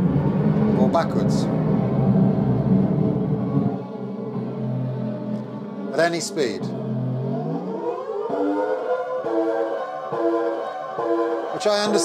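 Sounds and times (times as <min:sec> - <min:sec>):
turntable rumble: 0:00.0 - 0:05.7
backwards music from record: 0:00.0 - 0:07.8.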